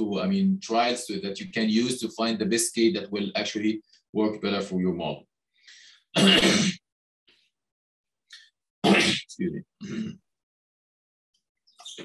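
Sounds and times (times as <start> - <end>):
man coughing: 6.2 - 6.8, 8.9 - 10.2.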